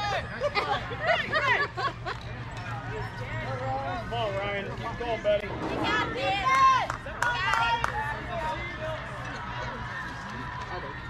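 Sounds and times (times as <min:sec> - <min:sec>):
voices calling out and chattering: 0:00.0 - 0:11.0
steady low hum: 0:04.6 - 0:08.1.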